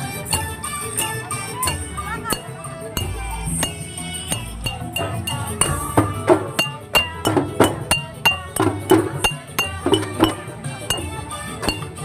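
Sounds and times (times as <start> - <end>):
spoons clinking on glass bottles: 0.3 - 12.0
low drum: 0.4 - 11.9.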